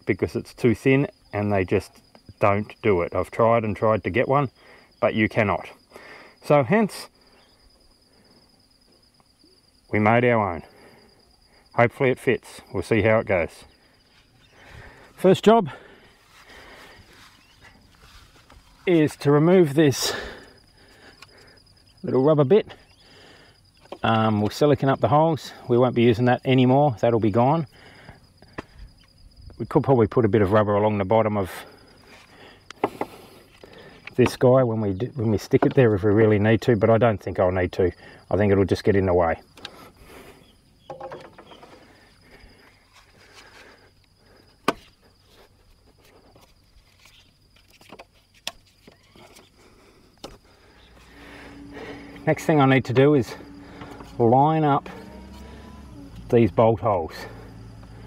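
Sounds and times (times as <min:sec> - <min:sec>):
high-pitched insect trill: 0:00.0 - 0:58.0
light knocks and clicks of parts: 0:23.8 - 0:24.6, 0:35.4 - 0:36.0, 0:40.8 - 0:41.9, 0:45.8 - 0:49.5, 0:50.2 - 0:58.0.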